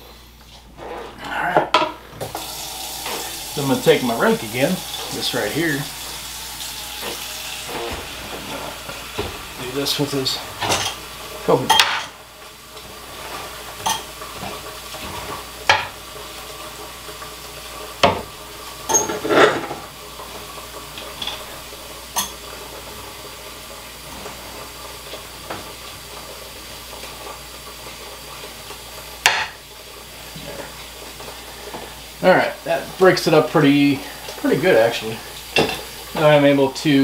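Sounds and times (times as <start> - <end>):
steady low hiss: 3.0 - 13.8.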